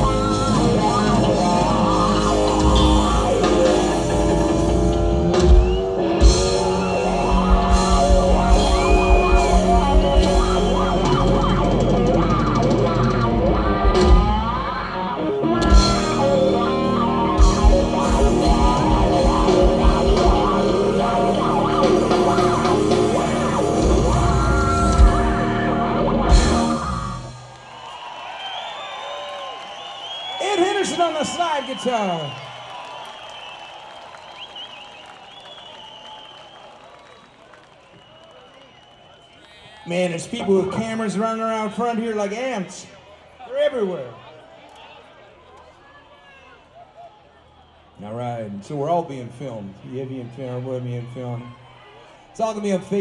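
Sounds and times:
bass guitar: 0.0 - 27.4
electric guitar lead: 0.0 - 27.5
drums: 0.0 - 36.6.

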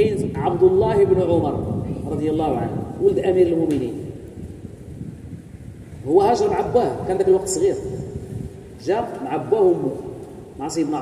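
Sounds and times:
low steady background rumble: 0.0 - 11.0.

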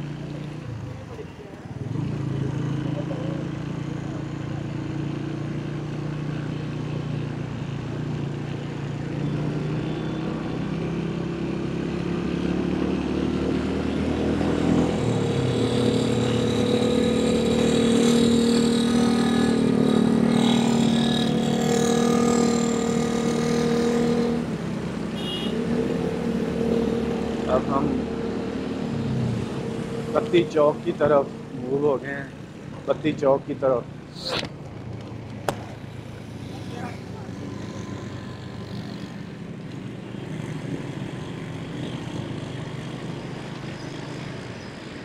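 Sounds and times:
city traffic: 0.0 - 45.0.

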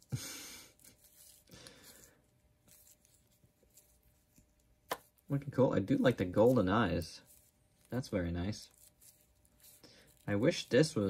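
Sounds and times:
cloth rustling and rubbing: 0.7 - 11.0.

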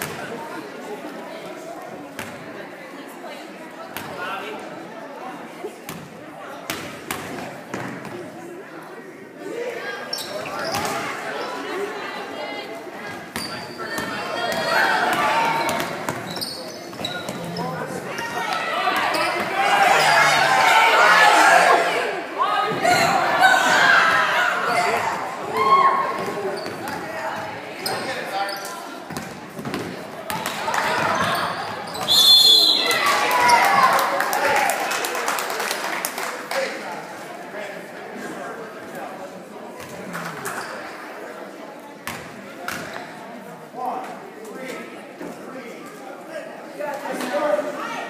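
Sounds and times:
spectators' voices: 0.0 - 48.0
sneakers squeaking: 10.0 - 11.2, 13.1 - 20.5, 24.7 - 33.7, 39.8 - 41.0
spectators shouting: 18.2 - 26.3.

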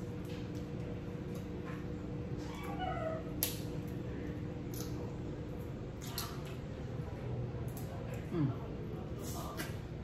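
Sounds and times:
steady low hum: 0.0 - 10.0
wet eating sounds: 3.2 - 9.8.

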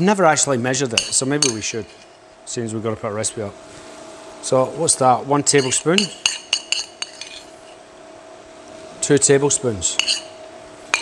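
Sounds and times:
spoon clinking against clay bowl: 1.0 - 2.0, 5.6 - 7.5, 9.9 - 11.0.

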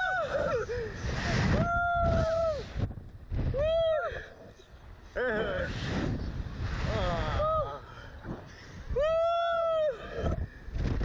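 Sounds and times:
wind rushing across microphone: 0.0 - 11.0.

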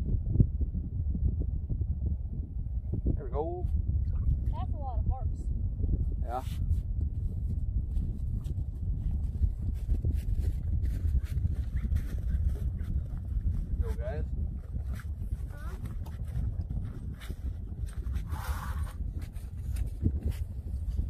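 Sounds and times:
wind rumble on microphone: 0.0 - 21.0.

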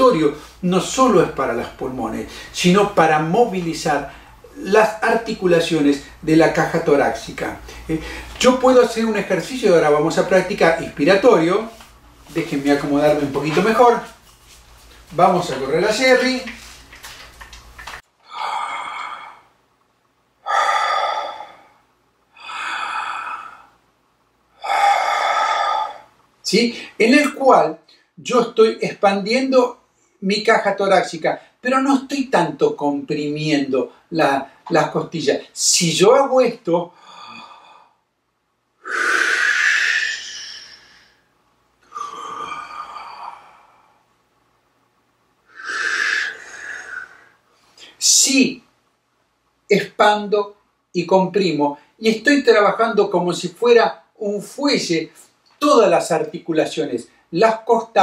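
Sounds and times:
man breathing deeply: 18.2 - 19.6, 20.4 - 23.8, 24.6 - 26.2, 37.0 - 38.1, 45.5 - 47.9.

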